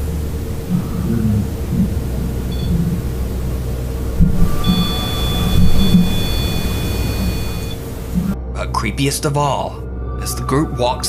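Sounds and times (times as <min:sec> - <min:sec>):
steady electronic meter tone: 0:00.0 - 0:08.4
low rumbling background noise: 0:00.0 - 0:11.0.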